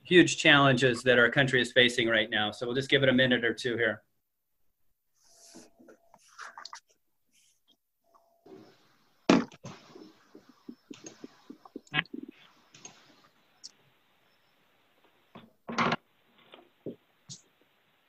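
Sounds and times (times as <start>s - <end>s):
microphone hiss: 8.4s - 18.0s.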